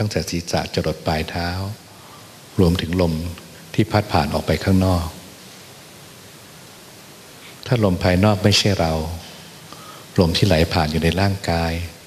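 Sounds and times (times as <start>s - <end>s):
man speaking: 0.0s - 1.9s, 2.6s - 5.3s, 7.6s - 12.0s
steady background hiss: 0.0s - 12.0s.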